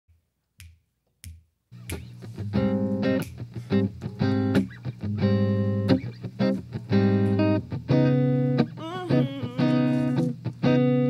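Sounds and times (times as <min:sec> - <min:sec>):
finger snaps: 0:00.6 - 0:04.8.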